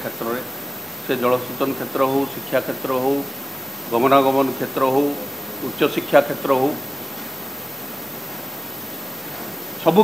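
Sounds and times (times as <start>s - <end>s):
man talking: 0.0s - 6.9s, 9.8s - 10.0s
background hiss: 0.0s - 10.0s.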